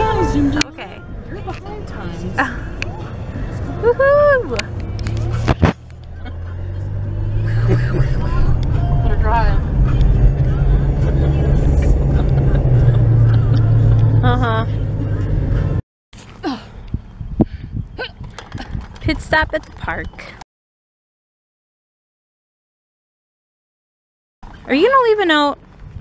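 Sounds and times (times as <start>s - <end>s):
car engine and road hum: 0.0s - 20.4s, 24.4s - 26.0s.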